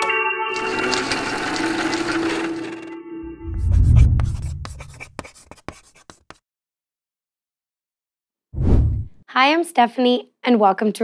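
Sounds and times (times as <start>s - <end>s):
deep boom: 8.6s - 9.2s.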